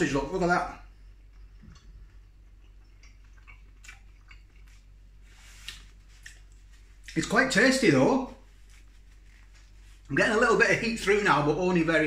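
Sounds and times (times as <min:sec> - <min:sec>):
person chewing food: 0:00.9 - 0:07.2
wet mouth clicks: 0:02.6 - 0:04.8.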